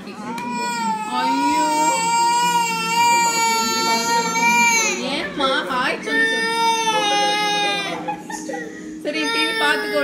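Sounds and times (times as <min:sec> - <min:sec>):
toddler crying: 0:00.1 - 0:10.0.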